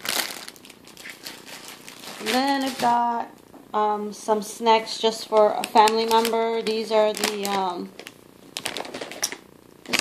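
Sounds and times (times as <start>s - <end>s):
plastic packaging crinkling: 0.0s - 3.5s, 5.0s - 10.0s.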